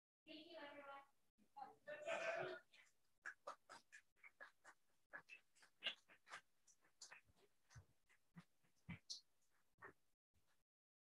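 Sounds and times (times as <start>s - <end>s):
soft rustles and ticks: 2.6s - 10.6s.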